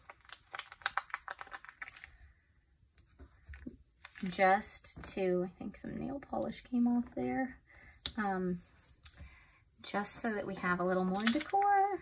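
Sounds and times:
plastic sticker sheet crinkling: 0.0s - 2.2s, 10.1s - 12.0s.

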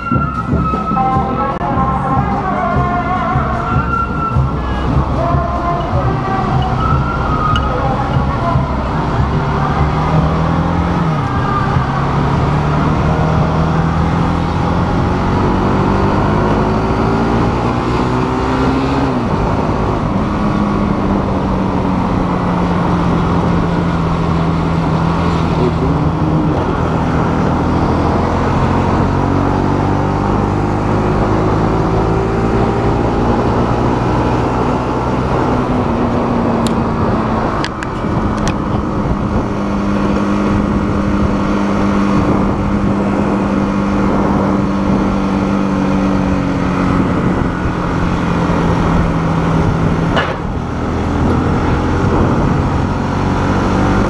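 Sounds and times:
motorcycle engine revving: 0.0s - 54.0s
wind and road noise: 0.0s - 54.0s.

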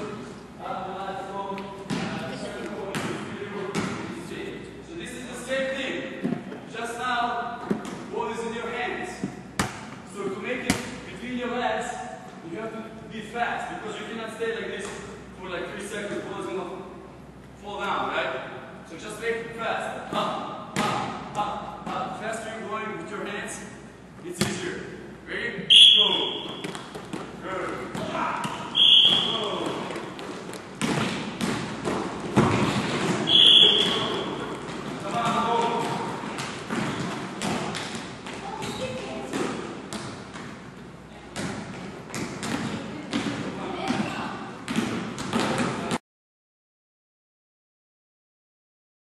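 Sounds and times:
basketball bouncing on gym floor: 1.8s - 4.1s, 20.2s - 22.2s, 26.1s - 40.6s, 41.3s - 46.0s
shoe squeaks: 25.7s - 26.8s, 28.5s - 29.6s, 33.1s - 34.4s.

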